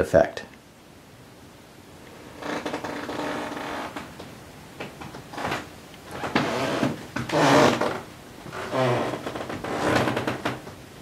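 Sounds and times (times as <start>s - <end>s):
creak: 2.1s - 4.1s, 5.3s - 10.8s.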